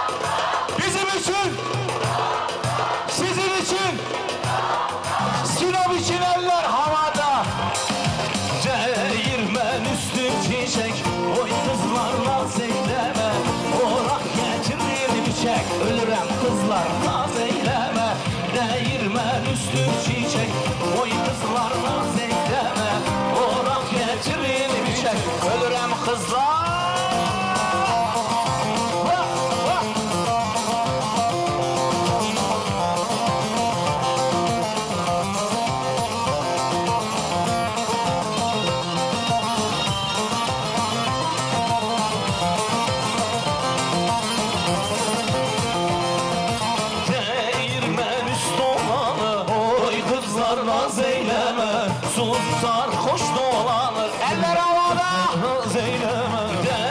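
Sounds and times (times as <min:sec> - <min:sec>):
live band playing folk dance tune: 0:00.0 - 0:56.9.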